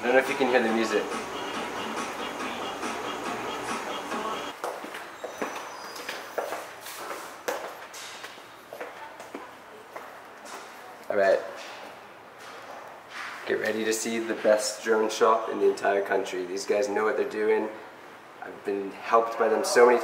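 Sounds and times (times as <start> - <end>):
faint dance music: 0.0 - 7.2
footsteps on tiled floor: 1.1 - 13.7.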